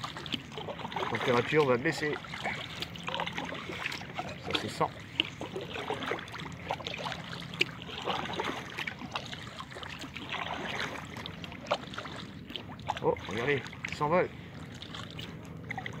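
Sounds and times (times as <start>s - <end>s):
water dripping from paddle: 0.0s - 14.1s
paddle splashing water: 0.0s - 16.0s.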